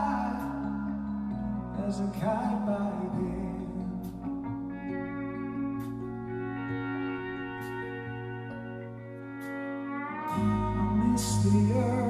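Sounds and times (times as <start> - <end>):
bass: 0.0 - 12.0
slide steel guitar: 3.9 - 12.0.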